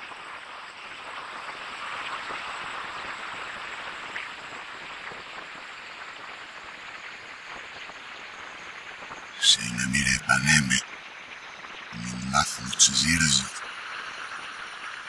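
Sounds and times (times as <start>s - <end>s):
dense steady hiss: 9.4s - 10.8s, 12.0s - 15.0s.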